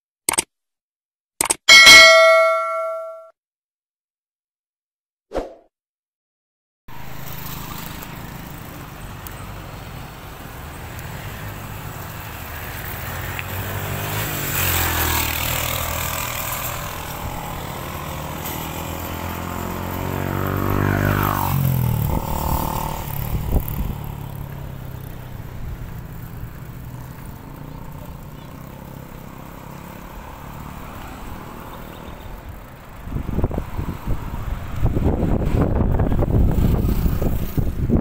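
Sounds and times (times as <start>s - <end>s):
vehicles passing by: 6.9s - 38.0s.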